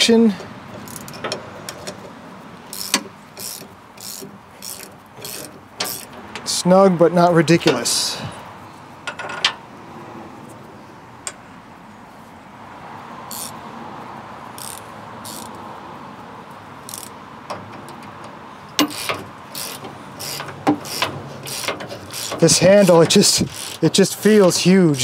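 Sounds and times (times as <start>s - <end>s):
ratcheting wrench clicks: 0.8s - 2.0s, 2.7s - 6.5s, 13.3s - 13.6s, 14.6s - 15.6s, 16.8s - 18.1s, 18.7s - 25.0s.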